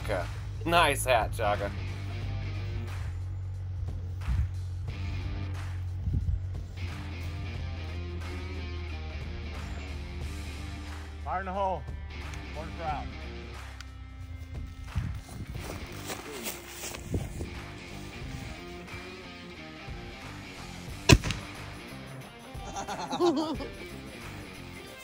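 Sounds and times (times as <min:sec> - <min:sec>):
background guitar music: 0:00.0 - 0:03.0, 0:04.9 - 0:05.6, 0:06.6 - 0:25.0
cannon boom: 0:21.1 - 0:21.7.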